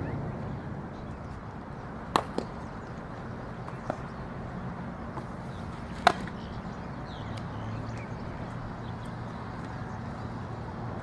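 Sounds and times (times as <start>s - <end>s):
softball smacking into glove: 2.1s - 2.5s.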